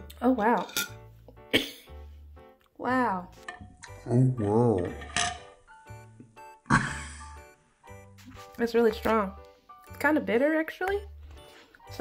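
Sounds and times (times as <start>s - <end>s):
light background music: 0.0s - 12.0s
person coughing: 1.5s - 1.9s, 6.7s - 7.2s.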